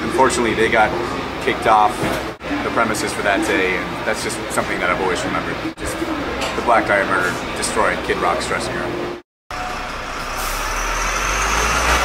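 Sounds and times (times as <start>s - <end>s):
heavy vehicle engine rumbling: 9.0s - 12.0s.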